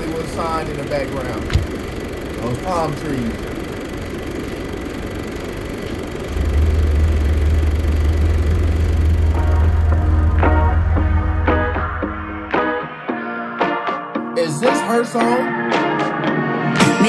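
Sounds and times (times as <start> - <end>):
car radio: 0.0 - 12.2
car engine idling: 0.0 - 12.6
noisy background: 0.0 - 13.1.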